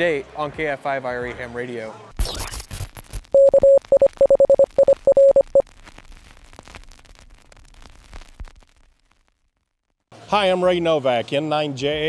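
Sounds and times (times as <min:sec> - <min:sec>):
crackling radio static: 0:02.5 - 0:09.4
morse code beeps: 0:03.4 - 0:05.6.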